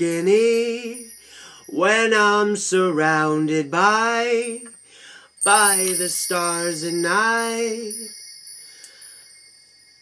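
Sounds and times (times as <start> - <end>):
faint high chime tones: 0.0 - 10.0.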